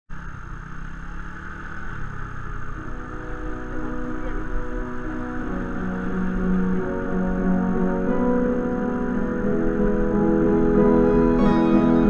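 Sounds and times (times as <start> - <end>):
motorbike engine and road rumble: 0.1 - 12.0
organ-like background music: 2.8 - 12.0.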